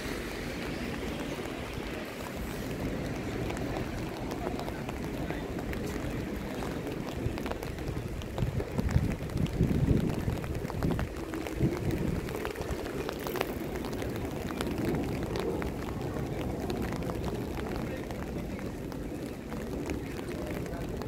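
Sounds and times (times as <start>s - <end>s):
faint voices of passers-by: 0.0s - 21.0s
outdoor city noise: 0.0s - 21.0s
wind buffeting microphone: 0.0s - 21.0s.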